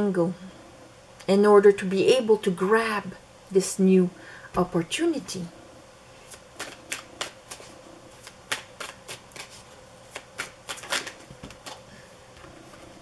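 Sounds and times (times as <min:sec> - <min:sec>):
cards being shuffled: 0:06.2 - 0:12.9.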